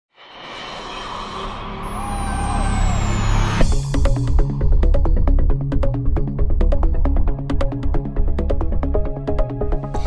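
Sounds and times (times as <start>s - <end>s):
high tone sliding downward: 1.8s - 3.7s.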